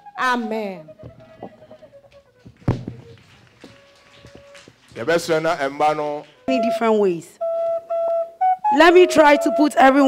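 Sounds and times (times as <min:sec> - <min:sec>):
wooden flute note: 0:00.0 - 0:10.0.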